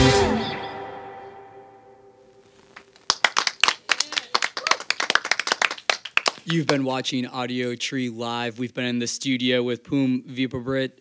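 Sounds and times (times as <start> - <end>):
song: 0.0 - 2.4
people clapping: 2.7 - 7.0.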